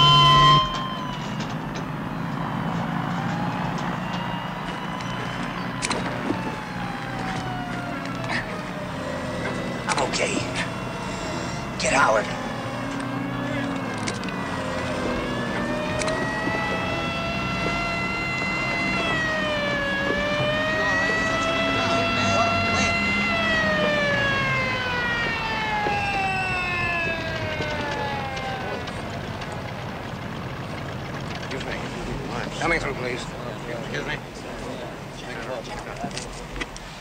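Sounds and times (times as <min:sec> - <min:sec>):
low engine rumble: 0:00.0 - 0:37.0
sirens wailing: 0:00.0 - 0:37.0.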